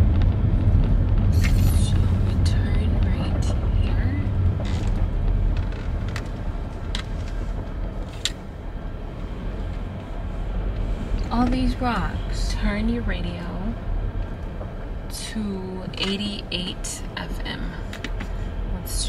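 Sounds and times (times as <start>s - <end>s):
car road noise rumble: 0.0s - 19.0s.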